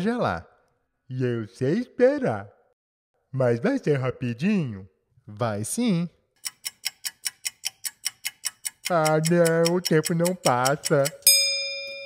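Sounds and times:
cartoon clock ticking: 0:06.4 - 0:12.0.

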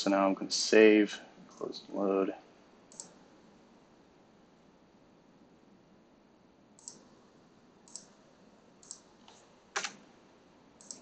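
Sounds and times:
computer mouse clicks: 0:02.9 - 0:03.2, 0:06.8 - 0:07.1, 0:07.9 - 0:08.2, 0:08.8 - 0:10.0, 0:10.8 - 0:11.0.

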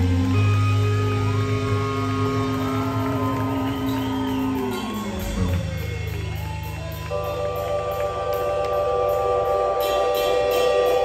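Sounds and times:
reggae band playing: 0:00.0 - 0:11.0.

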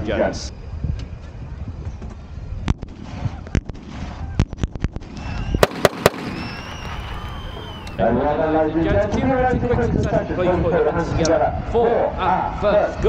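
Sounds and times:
handgun shots: 0:05.6 - 0:06.6.

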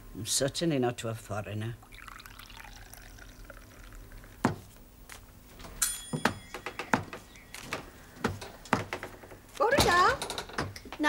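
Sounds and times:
tea pouring into china cup: 0:01.8 - 0:04.5.

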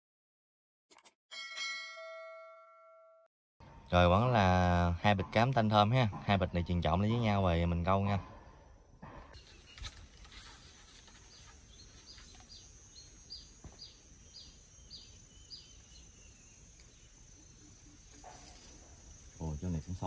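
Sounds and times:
high insect drone: 0:11.6 - 0:20.0.

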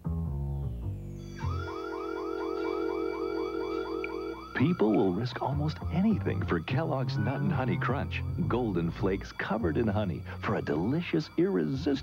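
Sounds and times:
security alarm rising chirp: 0:01.2 - 0:12.0
steady alarm tone: 0:01.2 - 0:12.0.

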